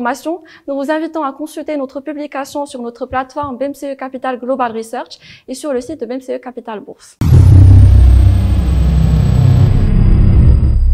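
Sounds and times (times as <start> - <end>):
deep rumble: 7.2 - 10.9
thin high whine: 7.2 - 10.9.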